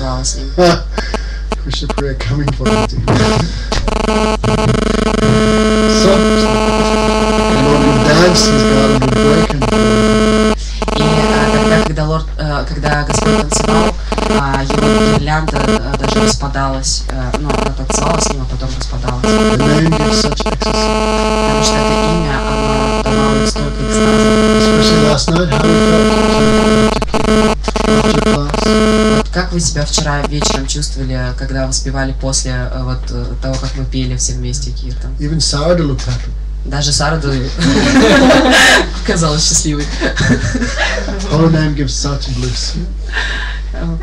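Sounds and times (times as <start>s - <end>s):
low wavering voice: 0.0s - 3.7s, 4.6s - 12.0s, 17.1s - 27.1s, 28.0s - 30.6s, 40.8s - 43.0s
buzzing drone: 0.0s - 12.0s, 12.7s - 31.2s, 37.6s - 38.8s
mains hum: 0.0s - 44.0s
low note stepping up and down: 1.0s - 11.9s.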